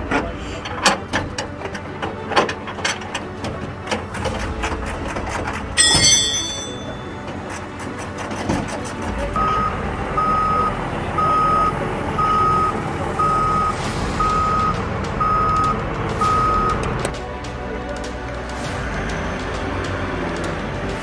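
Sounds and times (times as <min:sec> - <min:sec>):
low vehicle rumble: 0:08.9 - 0:17.2
reversing alarm beeps: 0:09.4 - 0:16.8.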